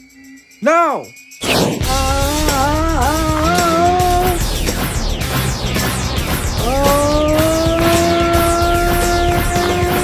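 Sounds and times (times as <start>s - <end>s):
rushing sound effect: 1.4s - 10.0s
cartoon yell: 1.9s - 4.4s, 6.6s - 10.0s.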